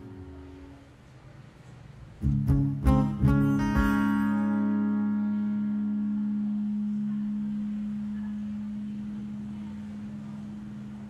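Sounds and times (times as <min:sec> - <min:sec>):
acoustic guitar chord ringing: 0:02.2 - 0:11.0.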